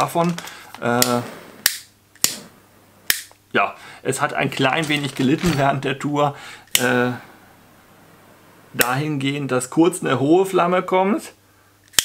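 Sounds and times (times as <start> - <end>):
lighter flame hiss: 0.9 - 3.3.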